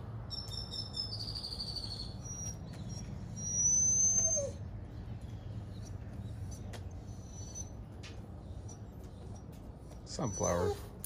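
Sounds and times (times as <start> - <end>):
small birds calling: 0.3 - 11.0.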